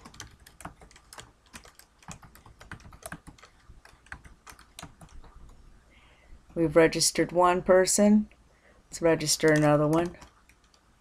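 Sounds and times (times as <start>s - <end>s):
keyboard typing: 0.0s - 5.6s, 9.2s - 10.9s.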